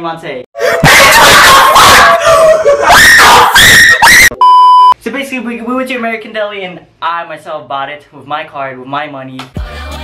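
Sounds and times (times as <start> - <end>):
people screaming excitedly: 0.6 - 4.3.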